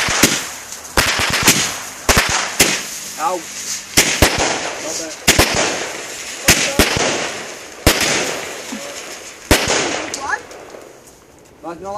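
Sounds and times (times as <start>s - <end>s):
firework bangs: 0.0s - 11.5s
fizzing crackle of firework stars: 0.0s - 11.6s.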